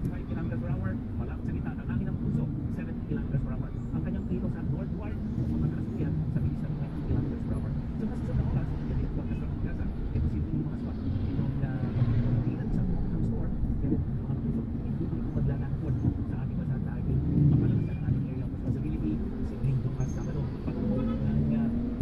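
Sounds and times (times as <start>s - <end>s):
car engine and road rumble: 0.0s - 22.0s
person talking: 0.0s - 22.0s.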